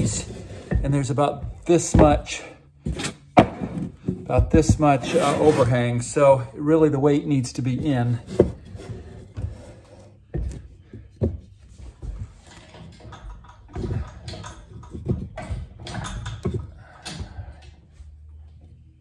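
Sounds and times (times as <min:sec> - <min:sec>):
wooden blocks scraping: 0:00.0 - 0:06.4, 0:07.4 - 0:12.8
wooden blocks knocking: 0:00.8 - 0:02.4.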